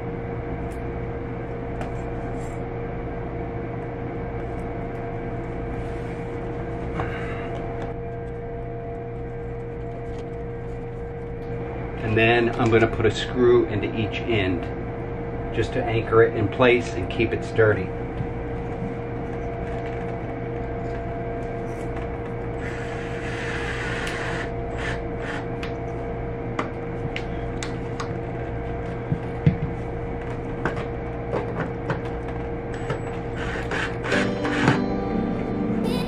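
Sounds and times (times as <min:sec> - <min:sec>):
steady hum: 0:00.0 - 0:36.0
soft background music: 0:34.1 - 0:36.0.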